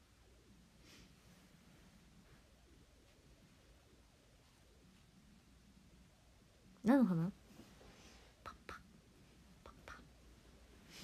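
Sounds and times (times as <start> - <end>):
woman whispering: 8.4 - 8.8, 9.6 - 10.1.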